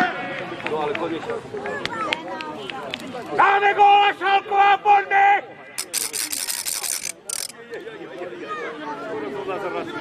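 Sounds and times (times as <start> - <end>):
ratchet rattle spinning: 5.8 - 7.6.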